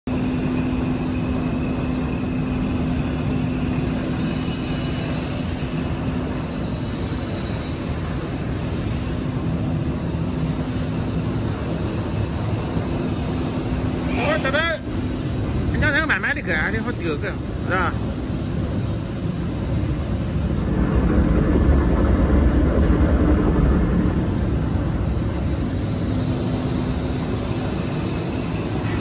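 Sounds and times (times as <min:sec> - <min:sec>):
constant low hum: 0:00.1 - 0:29.0
machine fan and motor whirring: 0:00.1 - 0:29.0.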